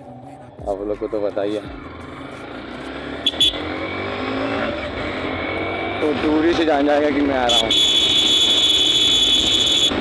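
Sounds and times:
motorcycle engine accelerating: 1.8 - 10.0.

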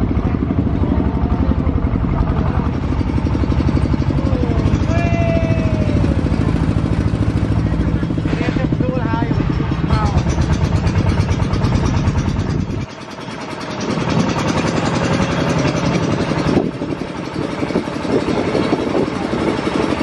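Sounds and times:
tractor engine chugging: 0.0 - 20.0.

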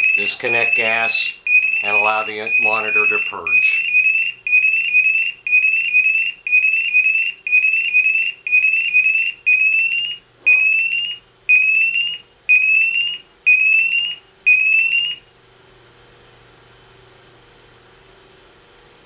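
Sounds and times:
gas detector alarm chirps: 0.0 - 15.2.

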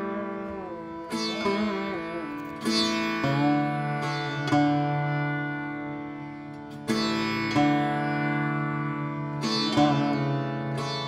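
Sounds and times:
bass sitar plucked notes ringing: 0.0 - 11.0.

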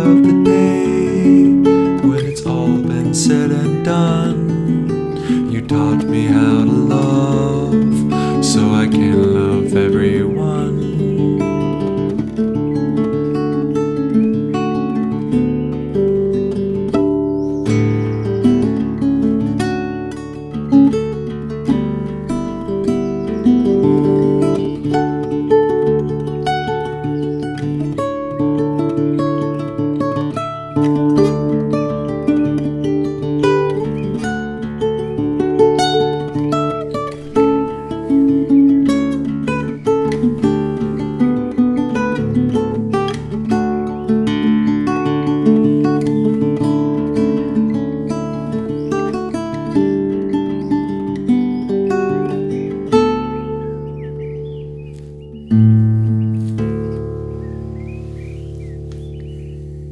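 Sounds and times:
acoustic guitar playing chords: 0.0 - 59.9.

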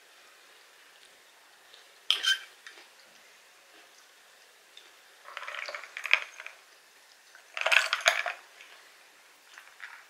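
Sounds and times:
ice cubes clinking in glass: 5.3 - 6.6, 7.6 - 8.4.

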